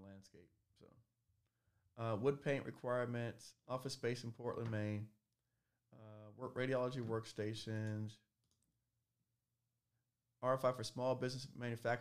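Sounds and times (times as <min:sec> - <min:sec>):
faint mouse clicks: 0:07.8 - 0:08.7.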